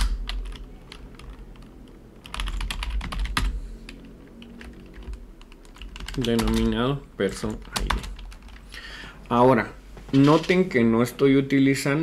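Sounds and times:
computer keyboard typing: 0:00.0 - 0:08.7.

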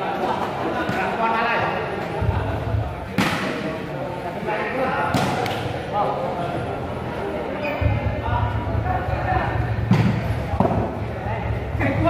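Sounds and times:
crowd chatter: 0:00.0 - 0:12.0
volleyball hit by hand: 0:05.1 - 0:05.7.

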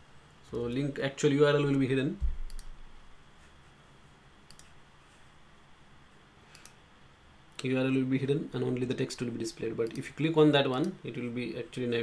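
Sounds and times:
faint room hiss: 0:00.0 - 0:12.0
computer mouse clicks: 0:02.4 - 0:02.8, 0:04.5 - 0:04.8, 0:06.5 - 0:06.8, 0:09.8 - 0:11.0.

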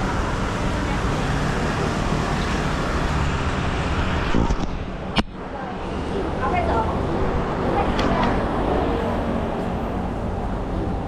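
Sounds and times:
city street traffic: 0:00.0 - 0:11.0.

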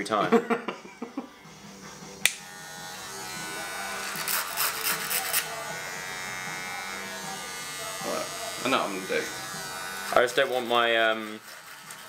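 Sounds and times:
electric hair clipper buzzing: 0:01.0 - 0:12.0.

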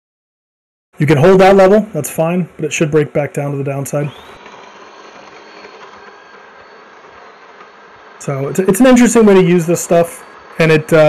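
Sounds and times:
steady background hiss: 0:01.0 - 0:04.2, 0:08.2 - 0:11.0
faint high-pitched whine: 0:01.0 - 0:11.0.

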